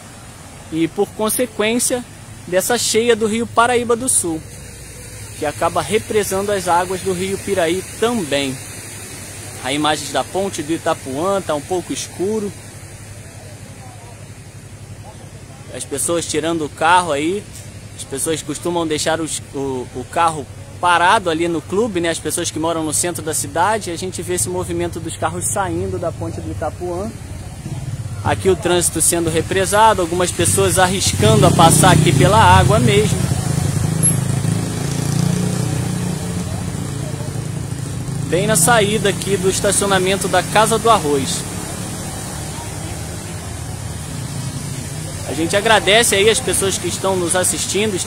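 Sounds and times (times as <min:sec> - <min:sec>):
distant road traffic hum: 0:00.0 - 0:48.0.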